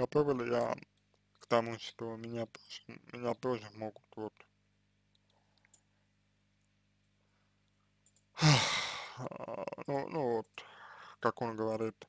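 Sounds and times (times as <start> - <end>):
man sighing: 8.4 - 9.8.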